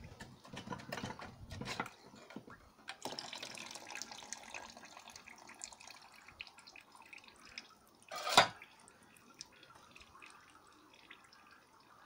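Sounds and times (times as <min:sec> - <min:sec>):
water dripping and trickling: 0:02.5 - 0:12.0.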